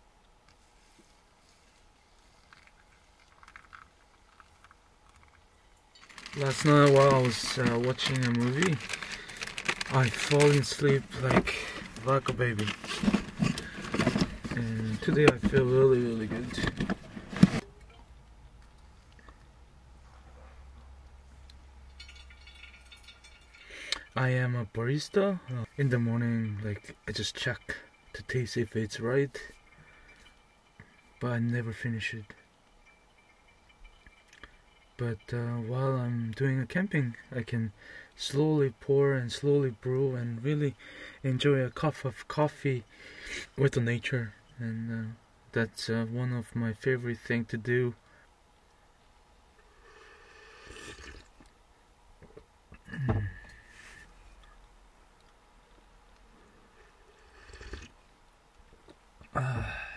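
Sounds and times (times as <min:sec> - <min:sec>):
small clinks: 0:21.9 - 0:24.2, 0:29.4 - 0:31.2, 0:32.2 - 0:35.3
slurping hot coffee: 0:49.9 - 0:51.3, 0:57.1 - 0:58.0.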